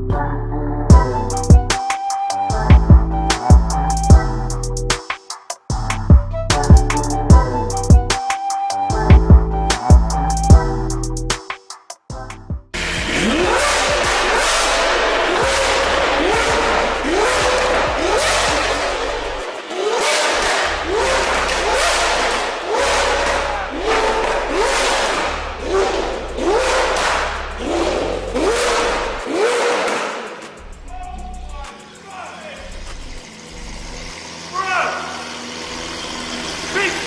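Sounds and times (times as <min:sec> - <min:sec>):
car engine revving: 0:12.8 - 0:37.0.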